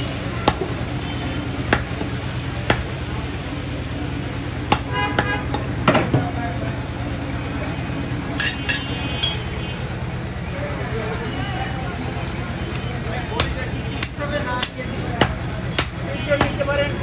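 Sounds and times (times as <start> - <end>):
low hum of traffic: 0.0 - 17.0
cleaver chopping meat on wood: 1.7 - 2.0, 2.7 - 2.9, 4.7 - 5.3, 13.4 - 16.6
ringing metal clinks: 8.4 - 9.6.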